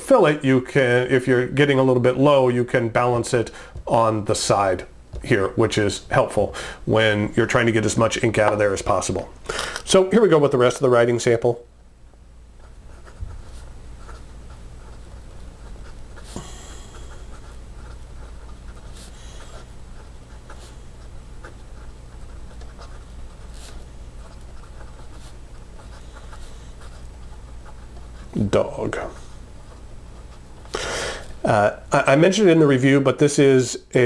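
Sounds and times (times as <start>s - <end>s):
steady low hum: 0.0s - 34.0s
pen nib scratching paper: 12.6s - 30.7s.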